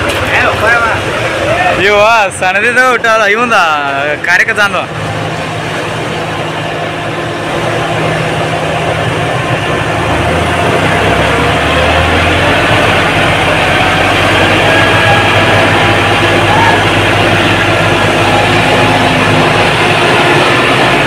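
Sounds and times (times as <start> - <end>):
tractor engines running hard: 0.0 - 21.0.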